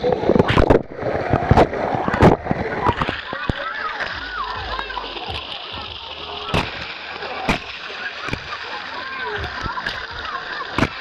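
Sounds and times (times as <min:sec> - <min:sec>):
moving water: 0:00.0 - 0:11.0
water splashing: 0:00.0 - 0:11.0
children's voices: 0:02.6 - 0:11.0.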